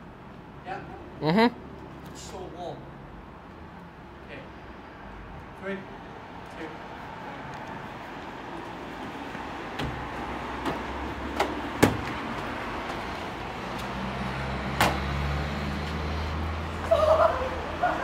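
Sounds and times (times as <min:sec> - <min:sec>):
street noise: 0:00.0 - 0:18.0.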